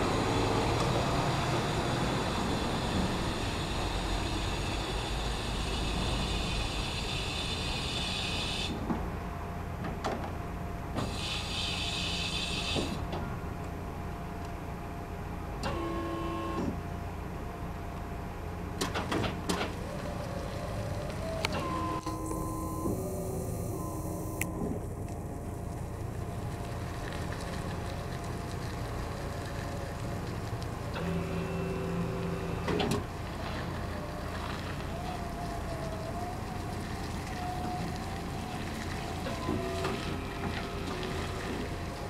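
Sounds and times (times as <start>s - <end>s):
electric motors humming and whining: 0.0s - 8.9s, 10.9s - 18.2s, 18.8s - 42.0s
hiss: 0.1s - 8.8s, 11.0s - 13.0s.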